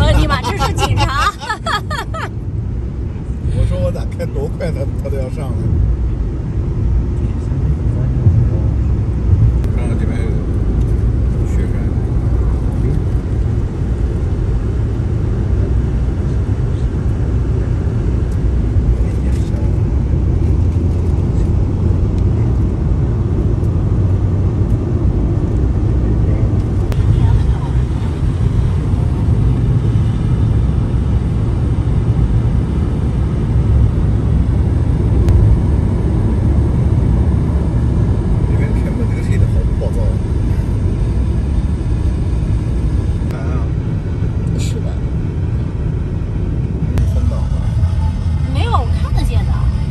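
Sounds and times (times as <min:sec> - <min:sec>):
car interior road noise: 0:00.0 - 0:49.9.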